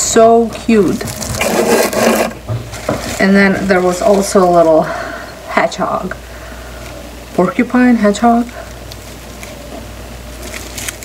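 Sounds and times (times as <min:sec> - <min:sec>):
dry decor rustling and rubbing: 0:00.8 - 0:04.9.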